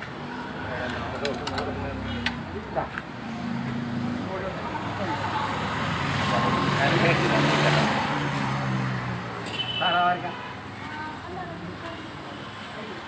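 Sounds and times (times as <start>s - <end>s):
motor vehicle passing: 0.3s - 9.4s.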